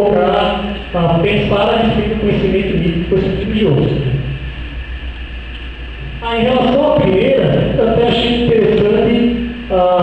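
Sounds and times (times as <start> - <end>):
sound system hum and hiss: 0.0 - 10.0.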